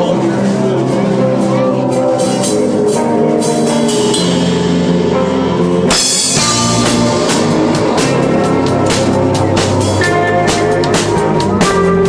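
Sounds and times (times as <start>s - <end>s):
drum kit: 0.0s - 12.0s
strummed electric guitar: 0.0s - 12.0s
sharp drum hit: 3.7s - 11.0s.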